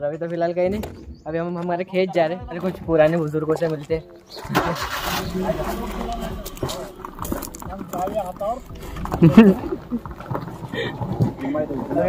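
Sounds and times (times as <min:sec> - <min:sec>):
faint voices: 0:04.4 - 0:12.0
vehicle engine rumbling: 0:04.4 - 0:12.0.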